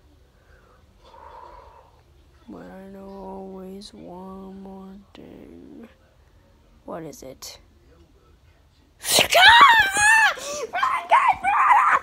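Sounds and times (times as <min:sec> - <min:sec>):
child screaming: 0:09.3 - 0:12.0.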